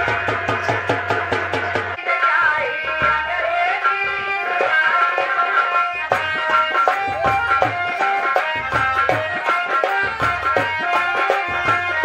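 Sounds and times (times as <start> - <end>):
fast hand-drum rhythm: 0.0 - 2.0, 2.8 - 12.0.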